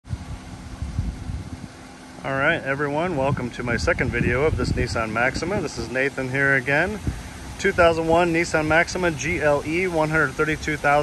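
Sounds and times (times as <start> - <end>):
wind buffeting microphone: 0.0 - 11.0
faint steady hum: 0.1 - 11.0.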